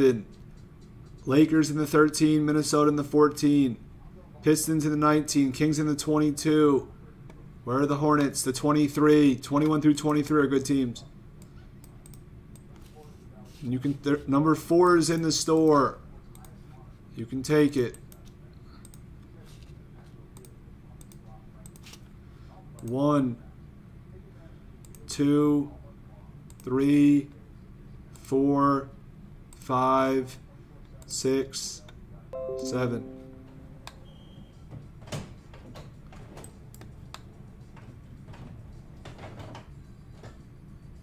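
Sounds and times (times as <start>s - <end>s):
low background hum: 0.0s - 41.0s
computer mouse clicks: 0.3s - 1.4s, 11.4s - 12.8s, 17.9s - 19.1s, 20.4s - 22.0s, 24.8s - 25.1s, 36.4s - 37.3s
low steady hum: 32.3s - 34.3s
musical note: 32.4s - 34.0s.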